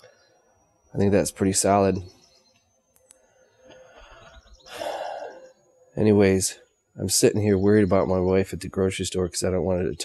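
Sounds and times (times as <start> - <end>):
man breathing in and sighing: 3.6 - 5.5.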